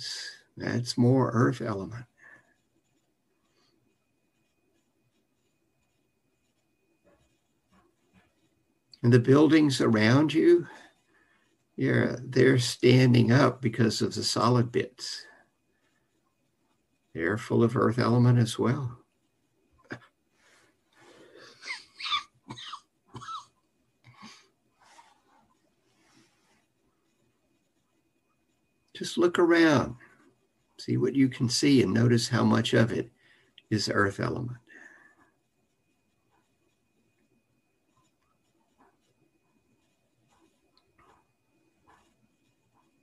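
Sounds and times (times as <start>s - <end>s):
person coughing and wheezing: 21.6s - 23.6s.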